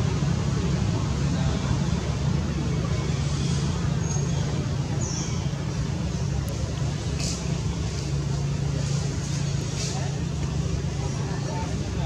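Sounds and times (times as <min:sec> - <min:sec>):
low engine hum: 0:00.0 - 0:12.0.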